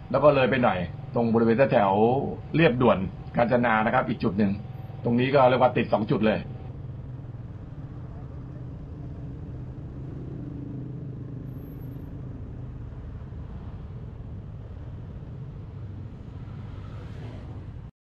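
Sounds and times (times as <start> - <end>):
road noise: 0.0 - 17.9.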